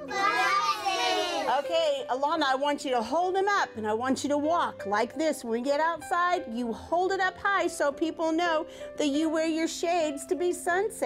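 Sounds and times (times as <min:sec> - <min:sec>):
young children talking and calling out: 0:00.0 - 0:01.6.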